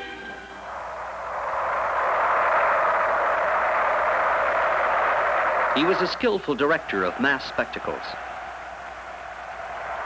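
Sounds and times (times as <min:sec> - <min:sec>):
large crowd cheering: 0:00.0 - 0:10.0.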